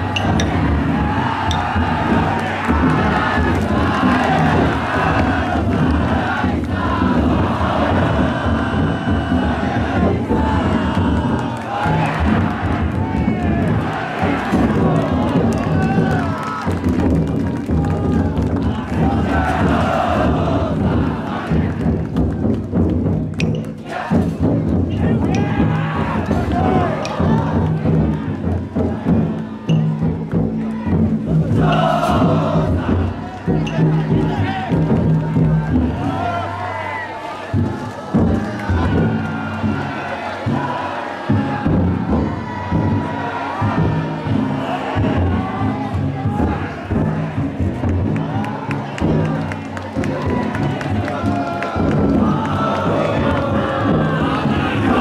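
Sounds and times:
deep taiko drum beating: 0:00.0 - 0:36.6, 0:37.5 - 0:55.0
crowd cheering: 0:00.0 - 0:55.0
crowd shouting and chanting: 0:00.0 - 0:55.0.

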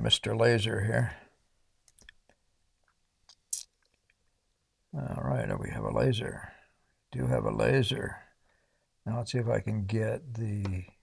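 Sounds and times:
faint small clicks: 0:01.8 - 0:04.6.

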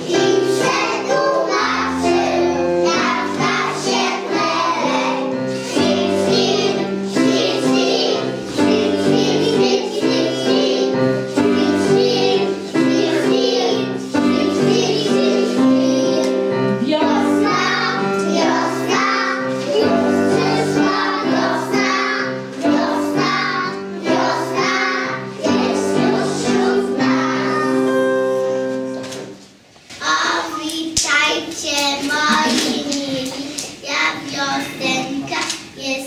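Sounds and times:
children singing in unison: 0:00.0 - 0:16.5, 0:17.1 - 0:29.2
instrumental backing of held notes: 0:00.0 - 0:29.5.

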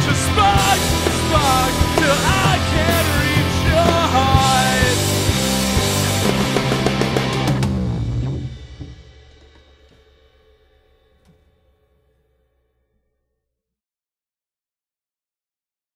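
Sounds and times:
rock band playing: 0:00.0 - 0:10.8.

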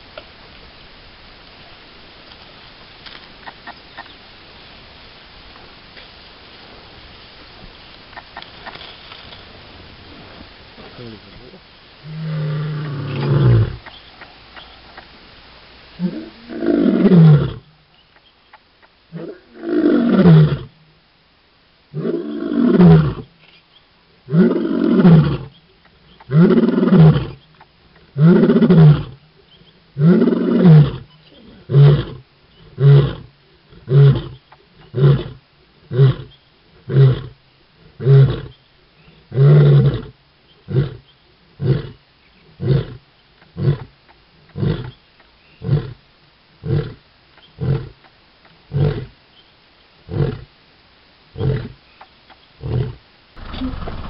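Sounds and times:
lion grunting: 0:10.9 - 0:14.0, 0:30.0 - 0:38.6, 0:52.6 - 0:54.0
lion roaring: 0:12.0 - 0:13.9, 0:16.0 - 0:17.7, 0:19.1 - 0:20.8, 0:21.9 - 0:23.3, 0:24.3 - 0:25.6, 0:26.2 - 0:27.4, 0:28.1 - 0:29.2, 0:30.0 - 0:38.6, 0:42.6 - 0:43.0, 0:52.6 - 0:54.0.

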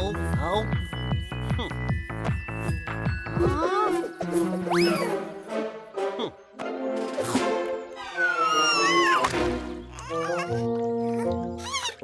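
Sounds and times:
cartoon background music: 0:00.0 - 0:12.0
squeaky cartoon character vocals: 0:08.2 - 0:09.2.

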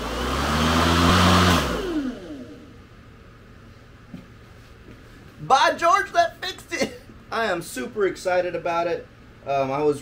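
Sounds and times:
electric lawn mower whine: 0:00.0 - 0:02.8.

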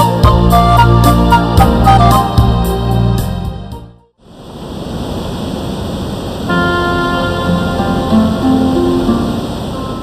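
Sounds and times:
music: 0:00.0 - 0:04.1, 0:06.5 - 0:10.0.

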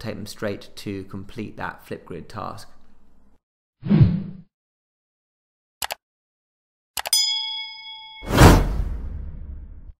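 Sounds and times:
bright bell ding: 0:07.1 - 0:08.6.

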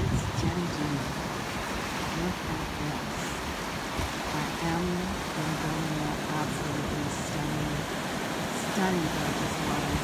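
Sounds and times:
woman speaking: 0:00.1 - 0:01.1, 0:02.1 - 0:03.4, 0:04.3 - 0:07.9, 0:08.6 - 0:10.0.

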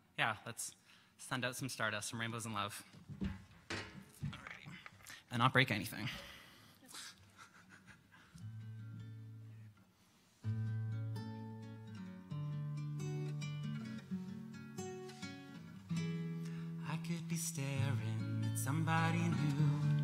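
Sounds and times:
acoustic guitars playing: 0:08.4 - 0:20.0.

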